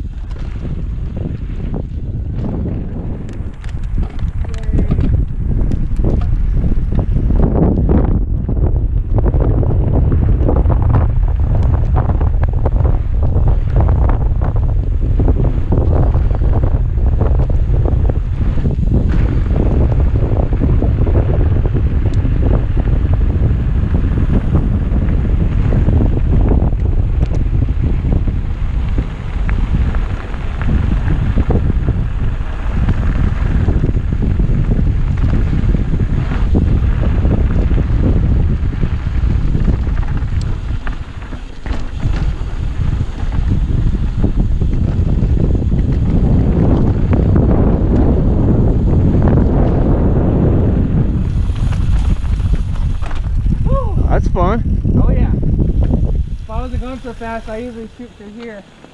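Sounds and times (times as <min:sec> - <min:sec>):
bike rattling and knocking: 0:00.0 - 0:58.9
bike tyre rumble on gravel: 0:00.0 - 0:58.9
wind buffeting microphone: 0:00.0 - 0:58.9.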